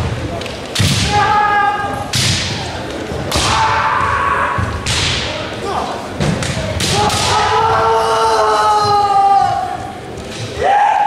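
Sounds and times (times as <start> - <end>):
long held shout: 10.6 - 11.0.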